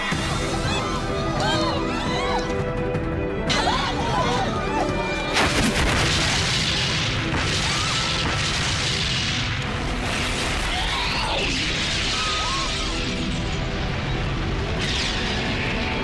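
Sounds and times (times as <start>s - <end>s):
voices shouting: 0.0s - 5.4s
dramatic background music: 0.0s - 16.0s.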